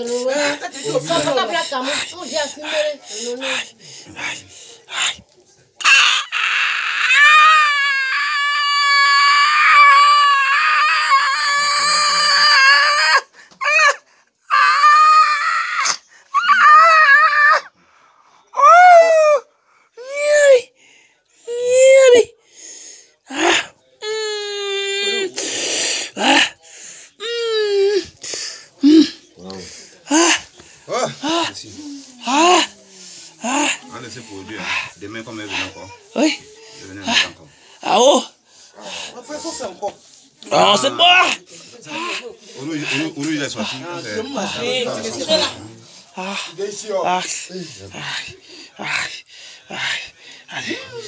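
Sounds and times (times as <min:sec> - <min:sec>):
person wailing in pain: 0:05.8 - 0:17.7.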